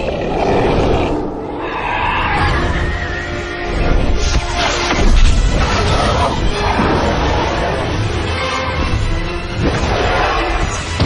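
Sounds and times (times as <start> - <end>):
dragon roaring: 0.0 - 3.9.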